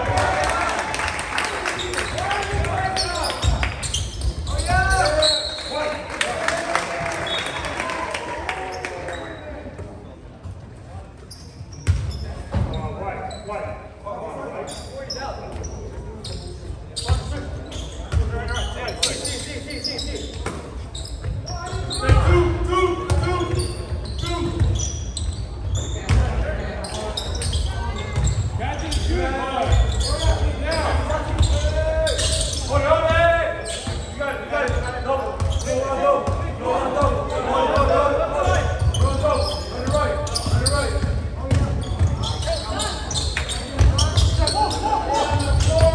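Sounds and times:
shouts and voices echoing: 0:00.0 - 0:09.7.

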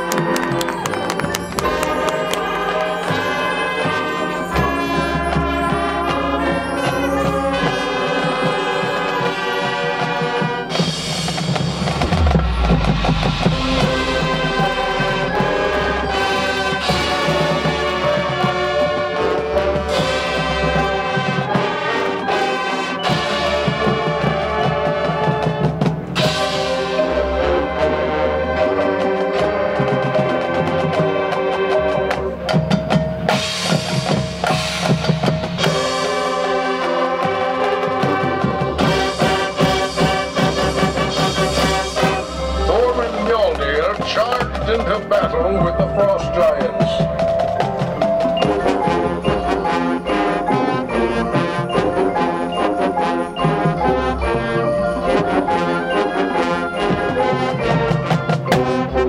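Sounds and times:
drum rolls: 0:00.0 - 0:22.0, 0:29.0 - 0:59.0
brass and wind chords: 0:00.0 - 0:32.4, 0:35.6 - 0:59.0
mallet percussion: 0:00.0 - 0:59.0.

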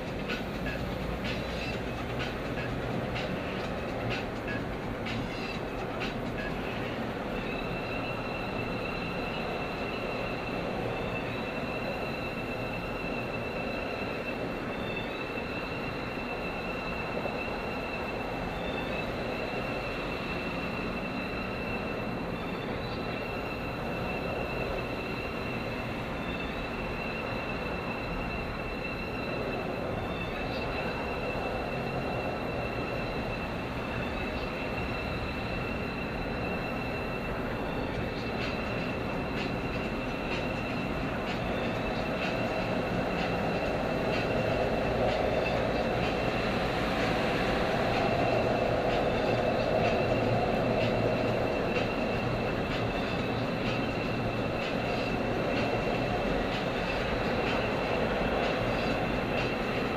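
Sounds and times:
road and engine noise inside car: 0:00.0 - 0:59.9
thin high steady whine: 0:00.0 - 0:59.9.

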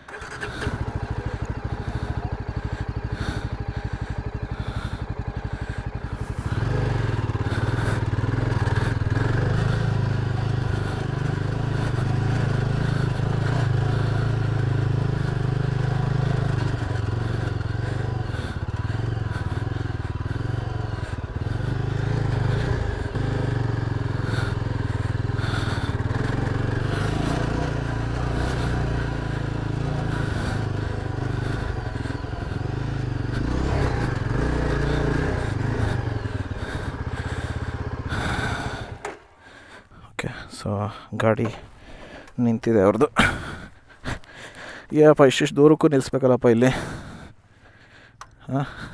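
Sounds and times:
motorcycle engine under load: 0:00.0 - 0:48.9.

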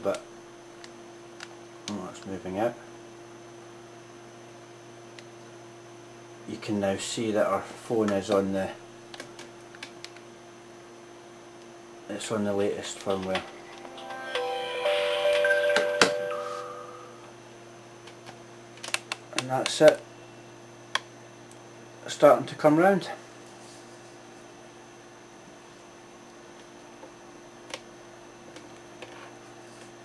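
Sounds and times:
electrical hum: 0:00.0 - 0:30.0
faint high whine: 0:12.2 - 0:17.8
electronic chime: 0:13.5 - 0:17.3.

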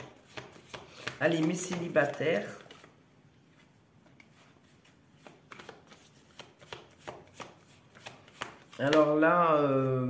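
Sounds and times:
cards being shuffled: 0:00.0 - 0:09.2.

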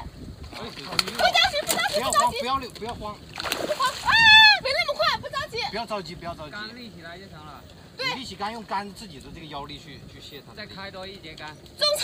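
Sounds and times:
fish splashing in water: 0:00.4 - 0:04.4
people talking: 0:00.6 - 0:02.7.

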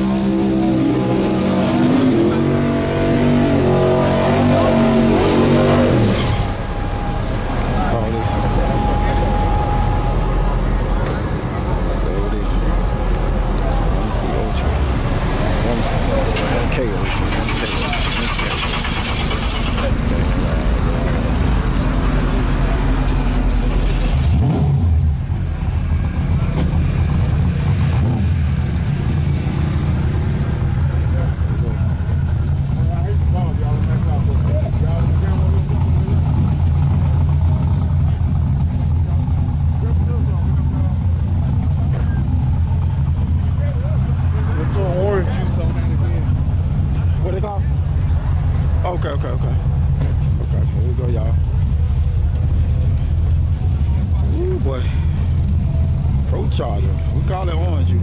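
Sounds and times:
race car engine idling: 0:06.0 - 0:58.0.

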